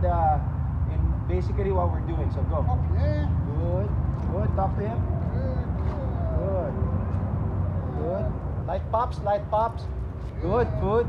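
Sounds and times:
man talking quietly: 1.0 - 7.0.

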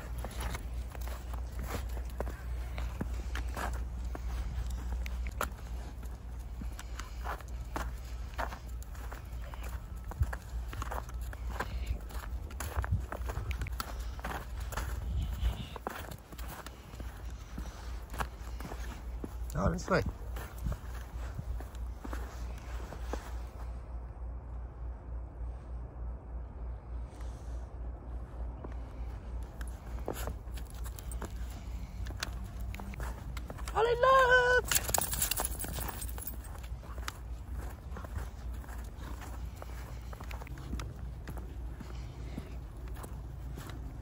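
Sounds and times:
footsteps crunching in snow: 0.0 - 23.8, 28.6 - 44.0
low rumble: 0.0 - 33.7.

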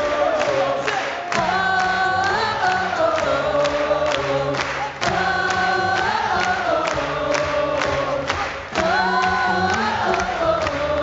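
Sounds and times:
male a cappella group singing: 0.0 - 11.0.

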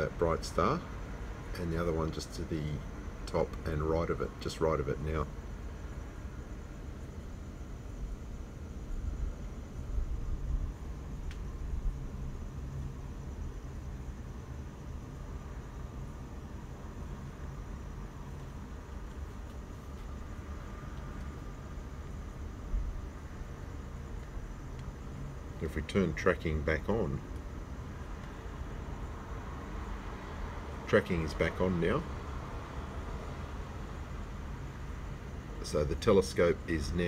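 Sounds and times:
low rumble with faint hiss: 0.0 - 37.0.

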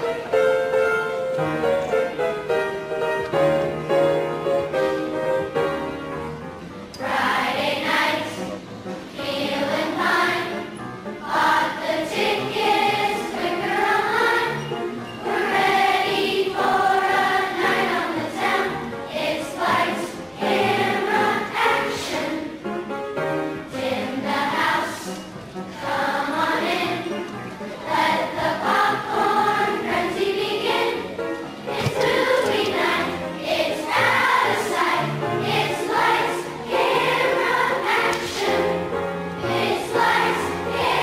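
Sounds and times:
children's choir singing: 0.0 - 41.0.

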